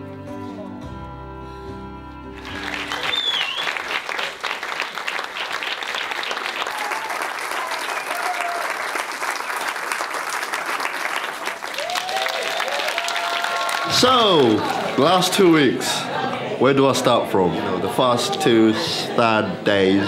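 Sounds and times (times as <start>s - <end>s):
music: 0.0s - 3.7s
audience applauding: 2.4s - 16.5s.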